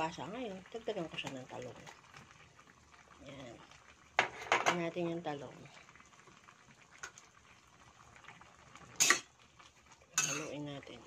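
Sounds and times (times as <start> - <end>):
stew bubbling in a pan: 0.0 - 11.0.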